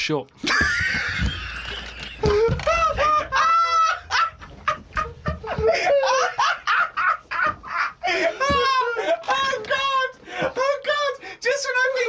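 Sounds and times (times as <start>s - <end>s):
hearty laughter: 0.4s - 10.8s.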